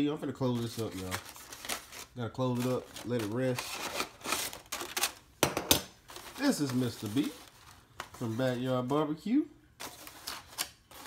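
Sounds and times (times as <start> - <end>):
aluminum foil crinkling: 0.4 - 5.3, 6.0 - 9.0, 9.8 - 11.0.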